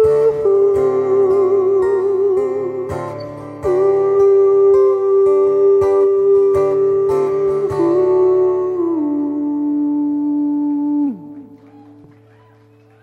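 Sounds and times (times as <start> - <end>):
acoustic guitar strumming: 0.0 - 12.8.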